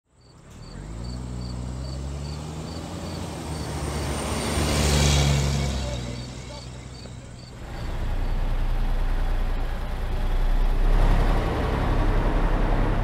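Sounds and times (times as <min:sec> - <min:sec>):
crickets chirping: 0:00.2 - 0:08.4
pickup truck driving past: 0:00.2 - 0:13.0.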